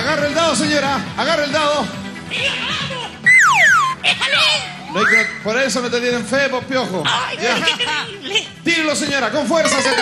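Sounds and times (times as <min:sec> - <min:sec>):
falling whistle sound effect: 0:03.2 - 0:04.0
studio music: 0:03.2 - 0:04.7.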